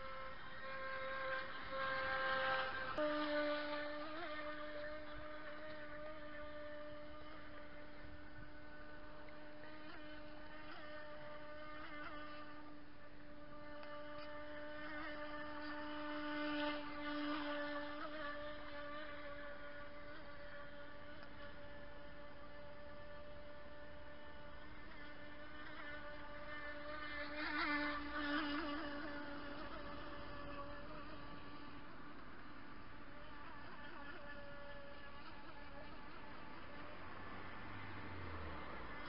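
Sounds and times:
model boat motor whine: 0.0s - 39.0s.

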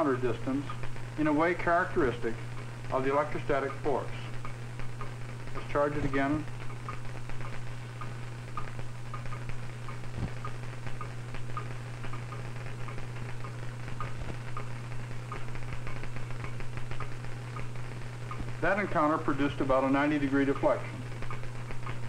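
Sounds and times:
faint crackles and ticks: 0.0s - 22.0s
steady low hum: 0.0s - 22.0s.

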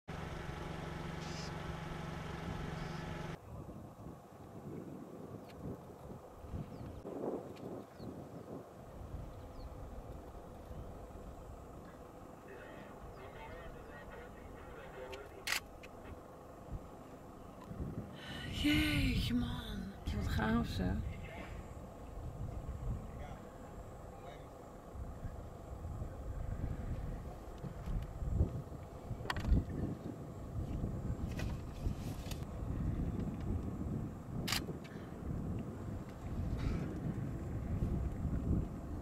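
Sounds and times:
vehicle engine idling: 0.1s - 3.4s, 8.7s - 34.3s.

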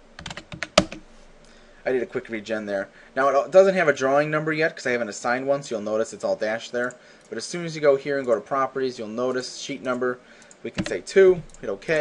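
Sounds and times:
computer keyboard keys clicking: 0.2s - 1.0s, 10.4s - 11.6s.

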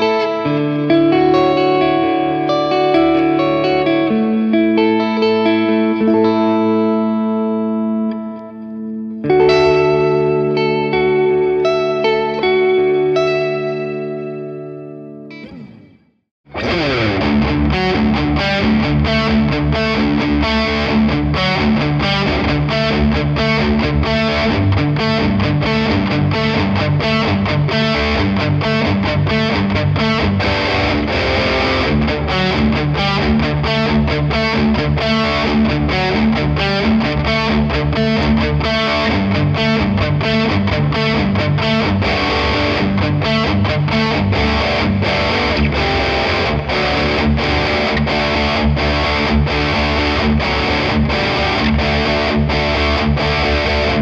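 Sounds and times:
distorted electric guitar riffing: 0.0s - 54.0s
electric guitar chord ringing: 0.0s - 54.0s.

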